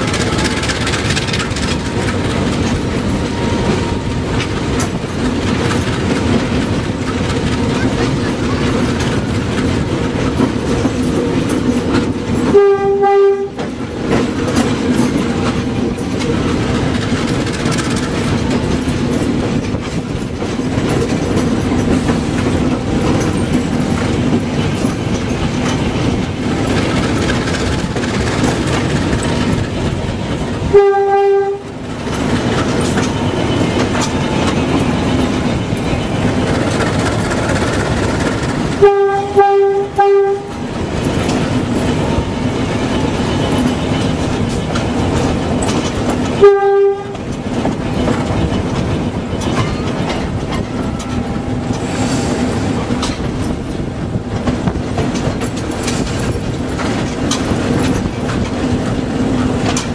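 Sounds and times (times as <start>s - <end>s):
diesel locomotive running: 0.0s - 59.9s
locomotive horn blasts: 12.4s - 13.7s, 30.6s - 31.8s, 38.7s - 40.6s, 46.4s - 47.3s.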